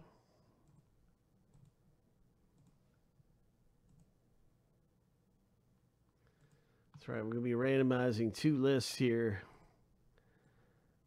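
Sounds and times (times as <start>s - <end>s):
faint computer mouse clicks: 1.5s - 1.8s.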